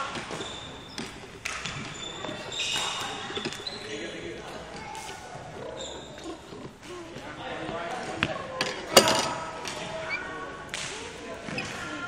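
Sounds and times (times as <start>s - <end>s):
racket hitting shuttlecock: 0.0s - 3.7s
background voices talking: 0.0s - 12.0s.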